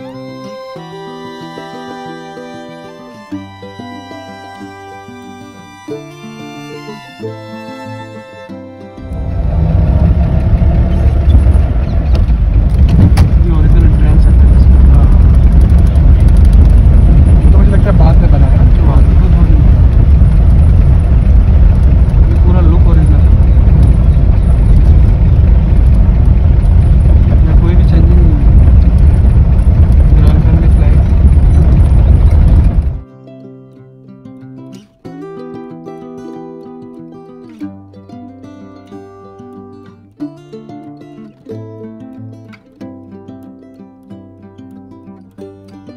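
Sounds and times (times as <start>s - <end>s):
car engine and road noise: 8.7s - 33.0s.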